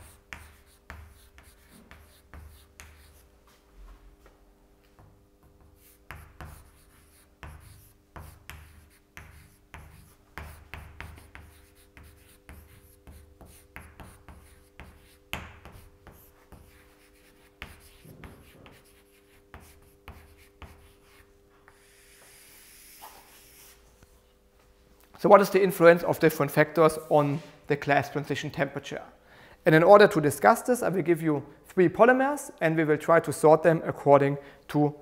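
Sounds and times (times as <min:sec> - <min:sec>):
chalk writing on blackboard: 0:00.0 - 0:03.3, 0:05.4 - 0:24.1.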